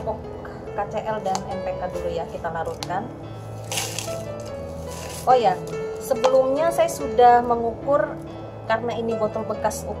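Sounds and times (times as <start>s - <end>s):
background music: 0.0s - 10.0s
granules pouring through a funnel: 3.6s - 5.5s.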